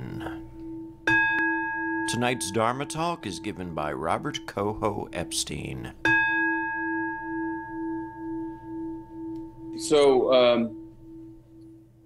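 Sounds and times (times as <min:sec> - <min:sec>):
singing bowl ringing: 0:00.1 - 0:12.0.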